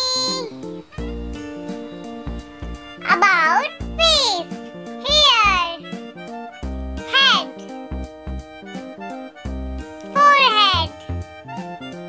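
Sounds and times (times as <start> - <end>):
children's music with steady beat: 0.0 - 12.0.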